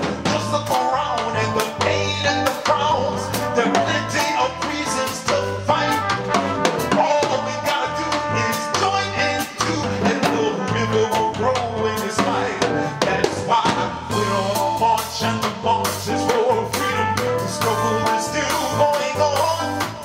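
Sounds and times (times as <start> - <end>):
drum kit strikes: 0.0 - 20.0
man singing into a microphone: 0.0 - 20.0
repeating bass line: 0.0 - 20.0.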